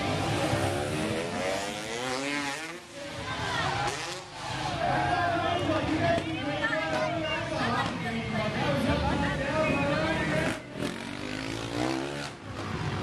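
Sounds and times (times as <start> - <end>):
motocross bike engine revving: 0.0 - 5.0, 10.1 - 13.0.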